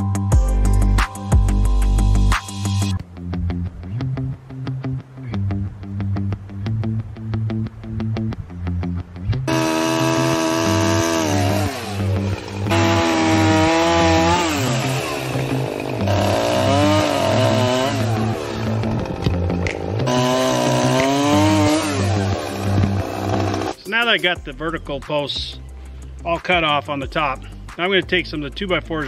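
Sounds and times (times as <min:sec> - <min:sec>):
background music with beat: 0:00.0 - 0:04.0, 0:17.5 - 0:29.0
chainsaw cutting wood: 0:09.5 - 0:23.8.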